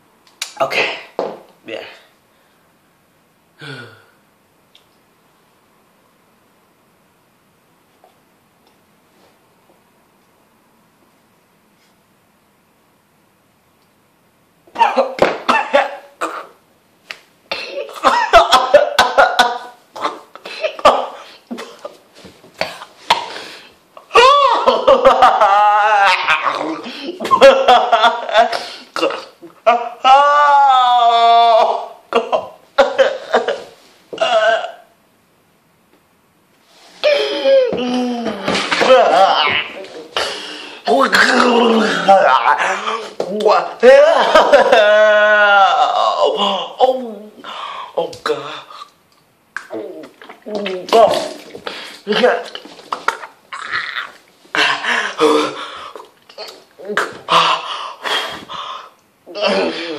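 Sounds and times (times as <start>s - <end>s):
man coughing and gagging: 0.6s - 1.2s, 14.7s - 16.6s, 17.5s - 22.0s, 26.2s - 30.0s, 31.6s - 34.9s, 38.4s - 45.1s, 50.9s - 58.4s
man whimpering: 40.9s - 43.2s, 53.6s - 55.8s.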